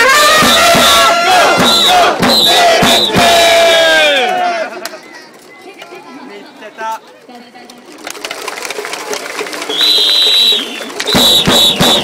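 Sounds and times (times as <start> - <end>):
crowd clapping fast: 7.7 - 12.0
steady high whistle: 9.7 - 12.0.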